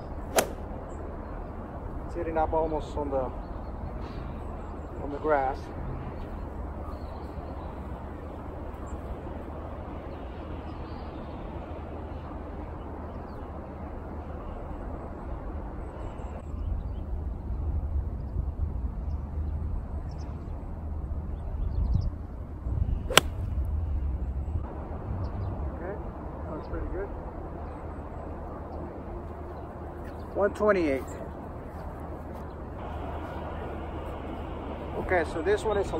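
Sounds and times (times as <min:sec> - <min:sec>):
golf club striking ball: 0:00.3 - 0:00.6, 0:23.1 - 0:23.5.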